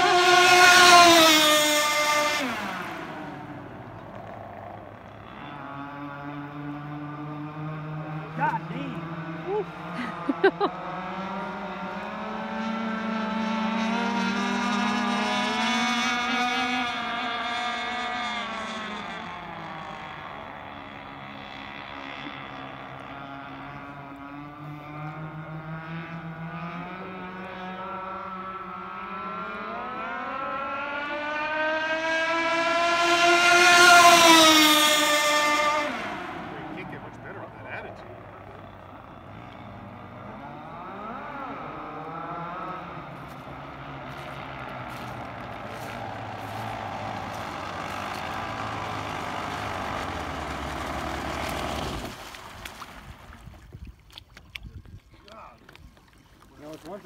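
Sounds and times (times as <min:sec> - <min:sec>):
model speedboat motor passing: 0:00.0 - 0:57.0.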